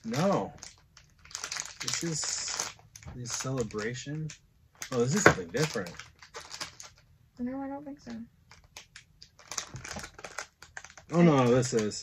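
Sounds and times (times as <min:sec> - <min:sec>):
wrapper crackling: 0:00.0 - 0:07.1, 0:08.4 - 0:12.0.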